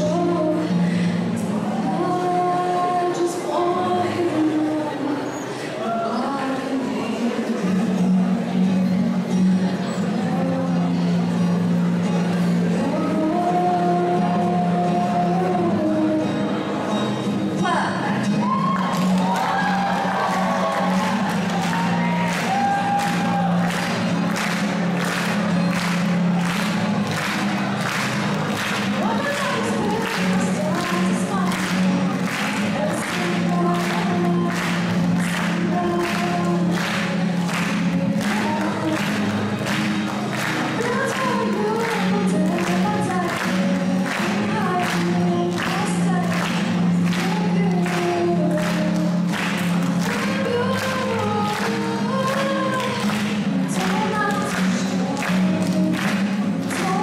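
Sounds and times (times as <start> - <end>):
woman singing: 0.0 - 8.1, 10.0 - 11.2, 12.7 - 16.6, 28.9 - 57.0
audience voices and cheering: 1.3 - 8.1, 16.7 - 57.0
acoustic guitar strumming: 7.1 - 57.0.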